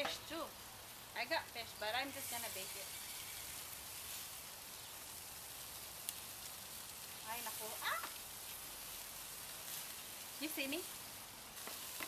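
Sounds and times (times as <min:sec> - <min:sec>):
meat sizzling on a grill: 0:00.0 - 0:12.0.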